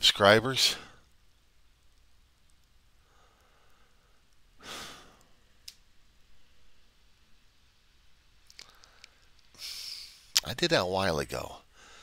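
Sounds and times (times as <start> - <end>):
man sighing: 9.6 - 10.3.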